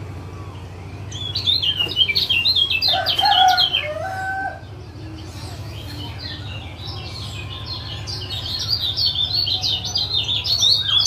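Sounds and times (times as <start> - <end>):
lower held bird call: 0.1 - 11.0
rapid high bird chirps: 0.6 - 11.0.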